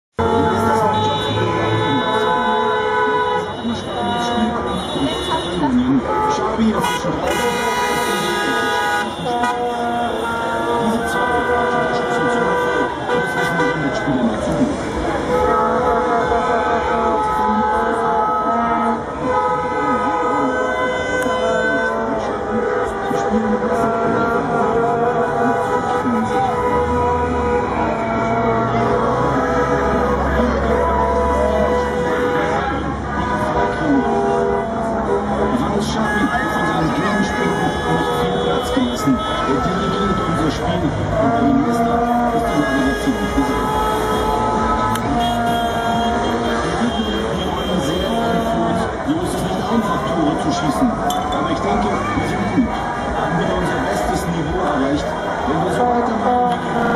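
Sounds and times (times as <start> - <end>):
car horns: 0.1 - 56.9
vuvuzelas: 0.1 - 56.9
voices: 0.2 - 56.9
people cheering and shouting: 24.2 - 56.9.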